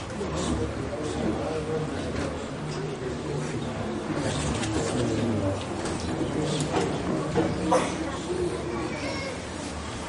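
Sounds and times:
low voices murmuring: 0.0s - 10.0s.

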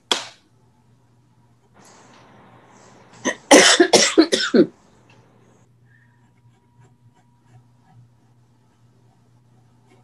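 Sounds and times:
person coughing: 3.2s - 4.8s.

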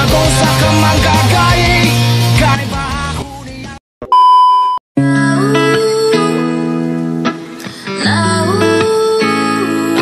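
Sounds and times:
background song: 0.0s - 3.8s
high electronic beep: 4.1s - 4.8s.

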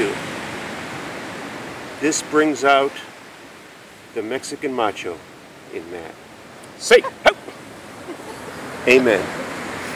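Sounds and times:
ocean surf rushing: 0.0s - 9.9s.

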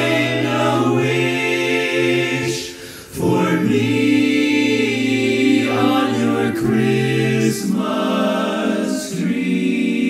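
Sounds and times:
men's chorus singing in harmony: 0.0s - 10.0s.

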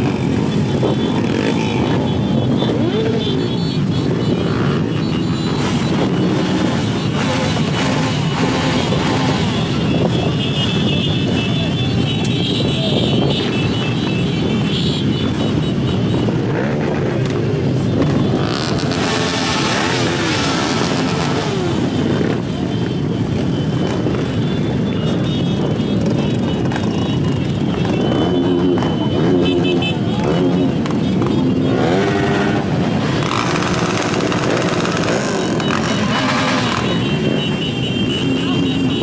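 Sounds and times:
motorcycle engines running: 0.0s - 39.0s
motorcycles revving: 0.0s - 39.0s.

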